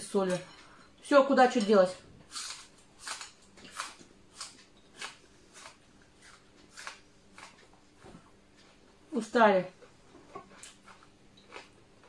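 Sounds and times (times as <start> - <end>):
faint steady hum: 0.0 - 12.0
chewing crisp greens: 2.3 - 8.0, 9.7 - 12.0.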